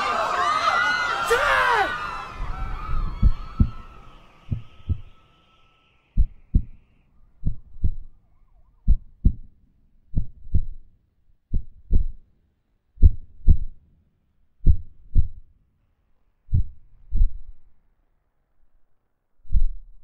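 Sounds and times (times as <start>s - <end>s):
heartbeat thumps: 2.9s - 3.8s, 4.5s - 5.2s, 6.2s - 6.8s, 7.4s - 8.1s, 8.9s - 9.5s, 10.1s - 10.8s, 11.5s - 12.2s, 13.0s - 13.8s, 14.6s - 15.4s, 16.5s - 17.4s.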